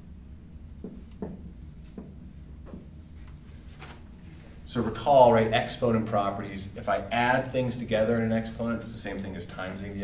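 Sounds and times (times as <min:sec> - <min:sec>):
marker writing on whiteboard: 0:00.8 - 0:03.4.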